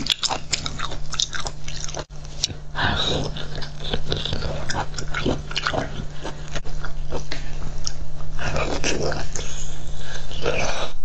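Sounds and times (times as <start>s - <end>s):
wet chewing and mouth clicks: 0.0s - 10.4s.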